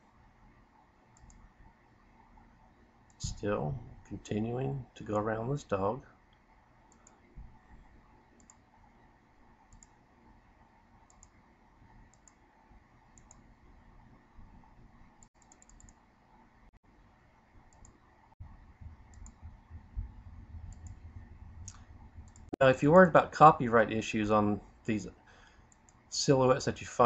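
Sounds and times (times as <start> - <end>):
computer mouse clicks: 1.1 - 1.5, 6.3 - 7.3, 8.4 - 8.7, 9.6 - 10.0, 11.0 - 11.4, 12.0 - 12.5, 13.1 - 13.5, 15.2 - 16.0, 17.7 - 18.0, 19.0 - 19.5, 20.7 - 21.0, 21.6 - 22.6, 25.7 - 26.0
low rumbling noise: 18.4 - 24.0.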